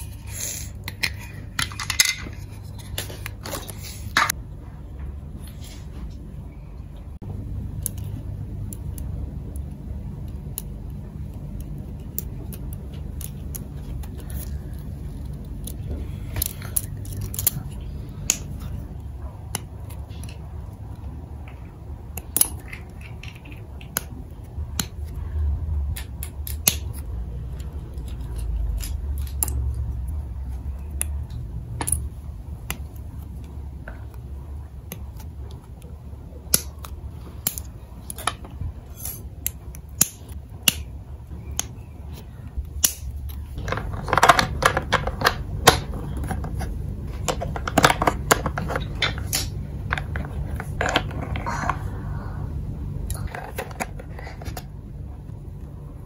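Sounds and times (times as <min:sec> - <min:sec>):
low steady hum: 0:00.0 - 0:56.0
plastic pieces clicking and rattling: 0:00.8 - 0:04.3, 0:22.2 - 0:24.2, 0:42.8 - 0:51.8.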